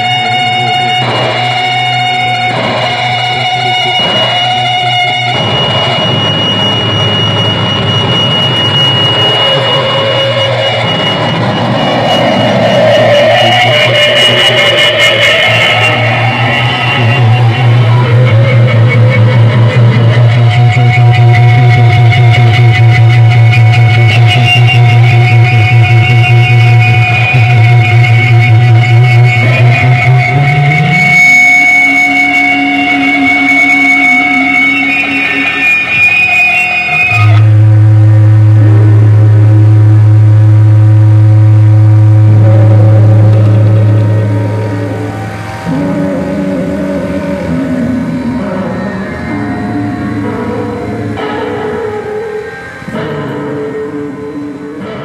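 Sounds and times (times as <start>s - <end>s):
electric guitar droning: 0.0s - 55.0s
loud low drone: 0.0s - 55.0s
low drone sliding up: 2.0s - 22.6s, 37.2s - 55.0s.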